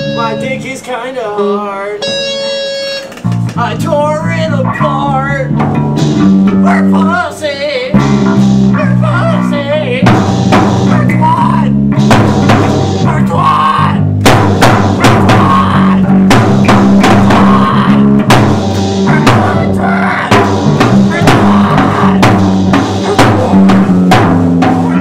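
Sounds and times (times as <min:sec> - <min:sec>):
drum kit beat: 0:00.0 - 0:00.8, 0:02.0 - 0:25.0
wavering melody line: 0:00.0 - 0:00.8, 0:02.0 - 0:03.2
bass guitar: 0:00.0 - 0:25.0
guitar holding chords: 0:00.0 - 0:25.0.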